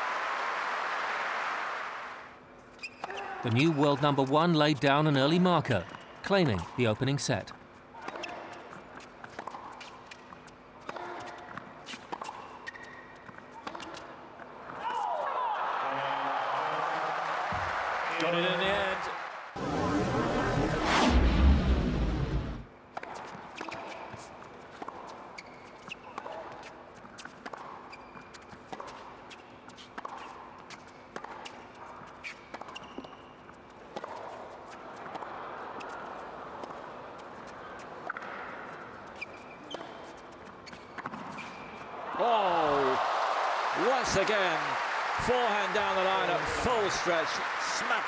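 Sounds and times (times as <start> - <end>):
shoe squeaks: 2.7 - 3.4, 9.6 - 14.0, 25.2 - 28.6, 32.1 - 33.6, 39.0 - 41.9
loud burst of noise: 19.5 - 22.6.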